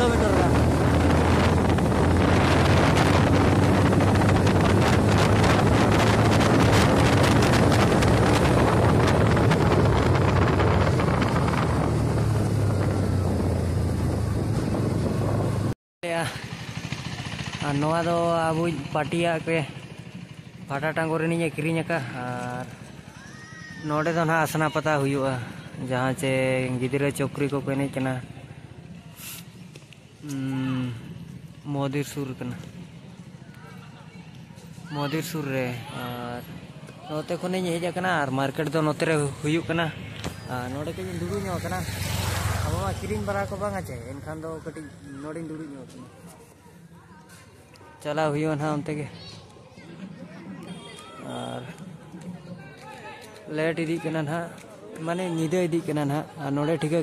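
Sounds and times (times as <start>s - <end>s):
wind rushing over microphone: 0.0s - 15.8s
motorcycle engine running: 0.0s - 22.2s.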